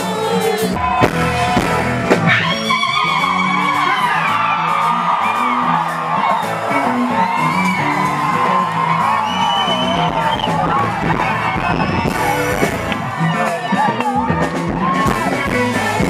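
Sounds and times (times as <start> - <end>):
crowd whooping: 0.0 - 16.0
live band with keyboard: 0.0 - 16.0.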